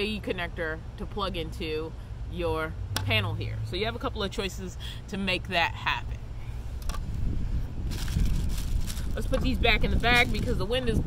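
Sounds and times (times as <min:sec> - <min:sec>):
wind buffeting microphone: 0:06.2 - 0:11.0
plastic bag crinkling: 0:07.8 - 0:10.7.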